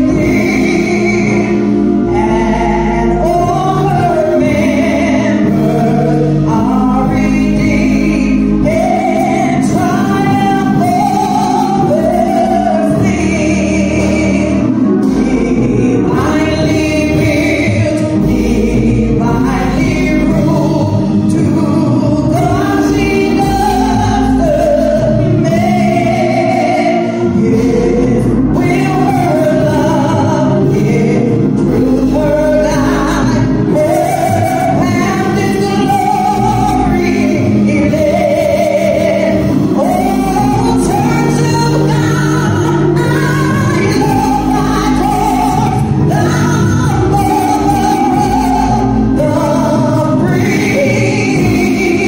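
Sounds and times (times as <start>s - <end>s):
instrumental accompaniment: 0.0s - 52.0s
woman singing gospel: 0.0s - 52.0s.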